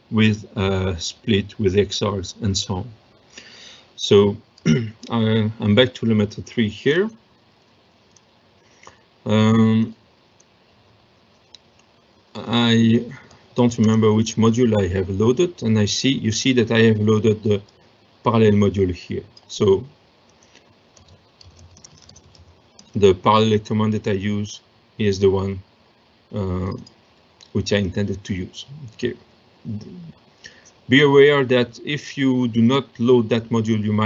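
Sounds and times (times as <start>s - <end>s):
computer keyboard typing: 13.6s - 14.2s, 20.3s - 23.1s.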